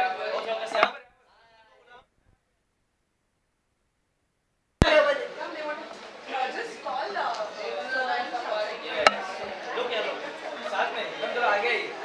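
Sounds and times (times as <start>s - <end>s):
people talking over one another: 4.8s - 12.0s.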